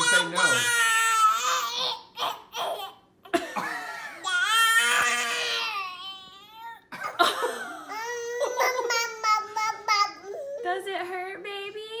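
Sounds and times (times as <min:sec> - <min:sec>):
baby crying: 0:00.0 - 0:03.1, 0:04.2 - 0:07.0, 0:07.8 - 0:10.8.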